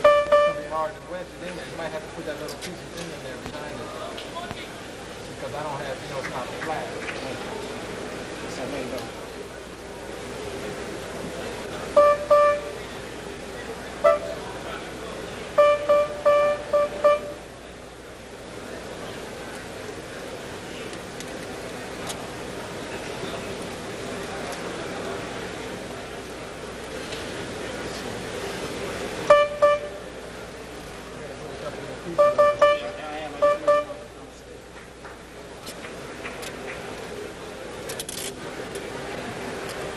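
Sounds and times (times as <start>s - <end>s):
high piano note struck repeatedly: 0.0s - 0.9s, 12.0s - 12.8s, 14.0s - 14.4s, 15.6s - 17.4s, 29.3s - 30.0s, 32.2s - 34.1s.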